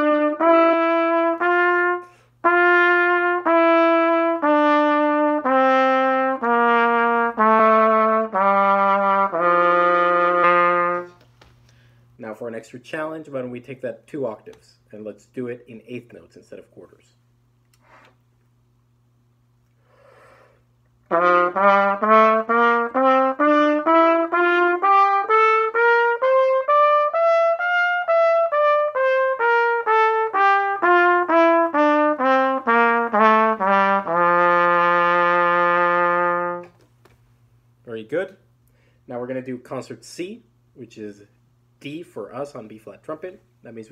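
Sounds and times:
trumpet playing a scale: 0.0s - 11.2s, 21.1s - 36.8s.

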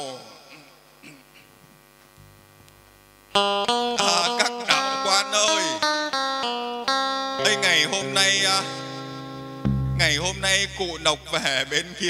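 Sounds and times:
electrical mains hum: 0.0s - 6.6s
lower hum: 8.6s - 11.6s.

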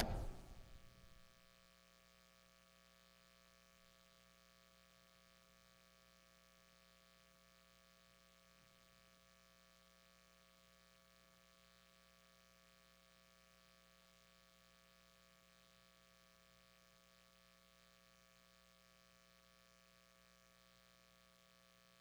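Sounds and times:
faint mains hum: 1.7s - 22.0s.

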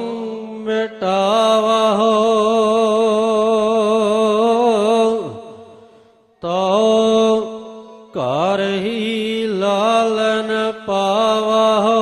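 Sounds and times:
person singing a hymn: 0.0s - 12.0s.

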